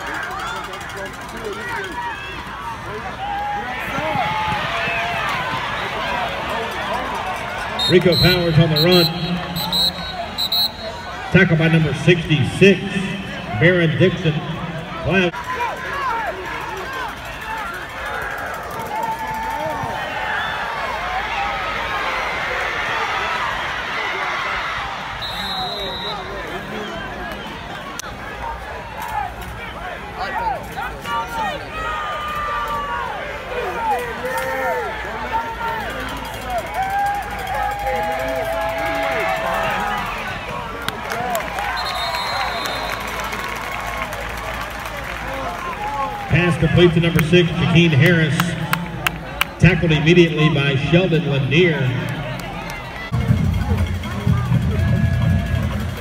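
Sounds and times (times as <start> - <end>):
crowd talking and shouting: 0.0 - 56.0.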